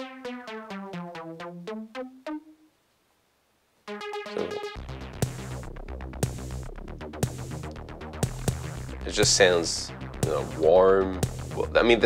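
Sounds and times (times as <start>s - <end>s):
short synth notes: 3.9s - 6.6s.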